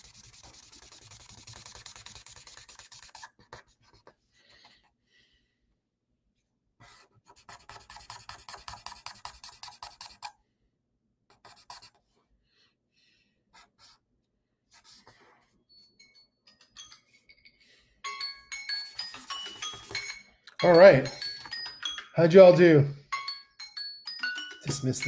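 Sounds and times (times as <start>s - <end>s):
pen scratching on paper: 0.0s - 4.2s, 6.8s - 10.4s, 11.3s - 12.0s, 13.5s - 14.0s, 14.7s - 15.5s, 18.8s - 20.2s
phone alarm chiming tune: 18.0s - 25.0s.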